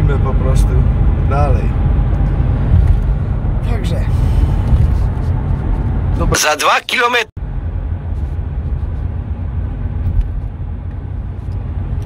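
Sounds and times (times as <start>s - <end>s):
car interior road rumble: 0.0s - 12.0s.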